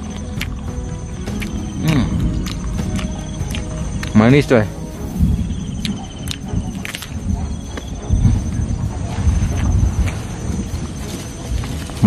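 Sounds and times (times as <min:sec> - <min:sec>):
high insect trill: 0:00.0 - 0:12.0
person chewing fruit: 0:00.0 - 0:12.0
soft low thumps: 0:00.0 - 0:12.0.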